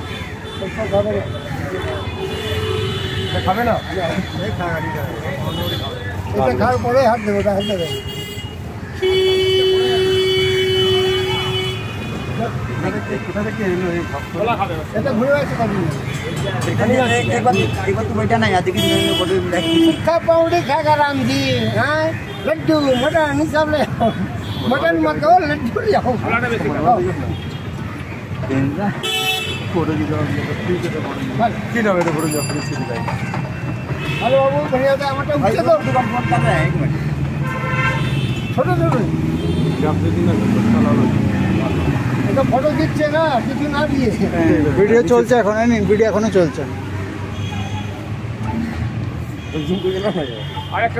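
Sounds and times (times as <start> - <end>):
street traffic: 0.0 - 50.9.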